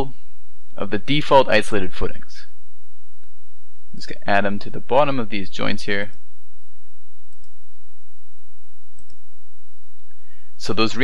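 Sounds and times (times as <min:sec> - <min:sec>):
computer mouse clicks: 0:07.3 - 0:07.6, 0:08.9 - 0:09.2.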